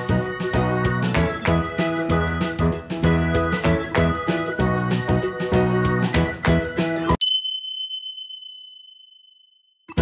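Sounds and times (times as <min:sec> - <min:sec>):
bright bell-like chime: 0:07.2 - 0:09.7.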